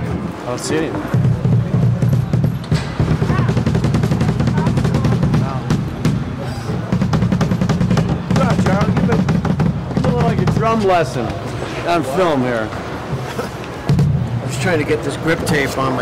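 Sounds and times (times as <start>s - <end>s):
voices talking: 0.0s - 16.0s
drum kit played fast: 1.1s - 11.2s.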